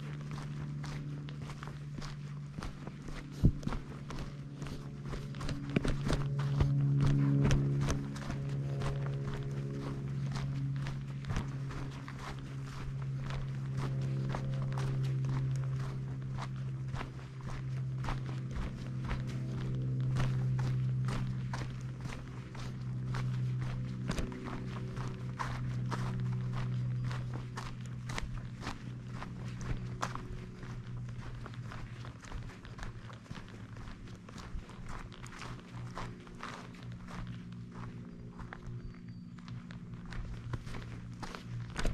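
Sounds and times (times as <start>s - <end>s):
footsteps on dirt trail: 0.0s - 41.9s
low steady hum: 0.0s - 41.9s.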